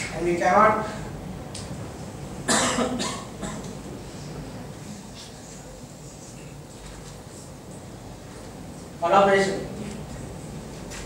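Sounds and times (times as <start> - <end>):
cough into microphone: 2.4 - 3.8.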